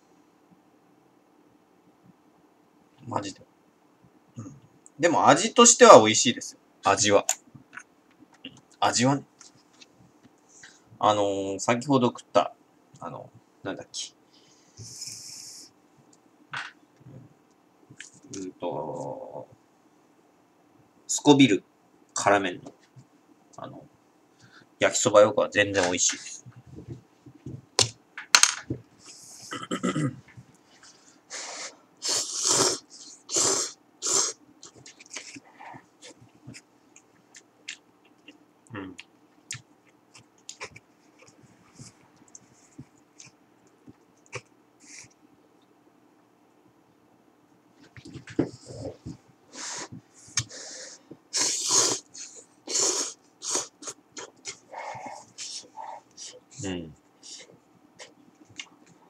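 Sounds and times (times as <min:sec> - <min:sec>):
person slurping noodles: 0:31.5 - 0:34.4, 0:51.3 - 0:56.0.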